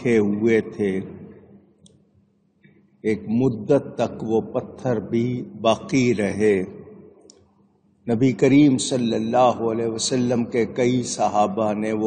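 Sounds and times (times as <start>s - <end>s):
man speaking: 0.0s - 1.3s, 3.1s - 6.8s, 8.1s - 12.0s.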